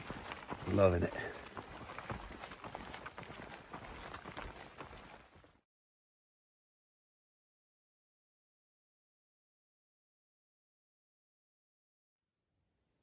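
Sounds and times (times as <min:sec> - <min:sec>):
footsteps on wet trail: 0:00.0 - 0:05.6.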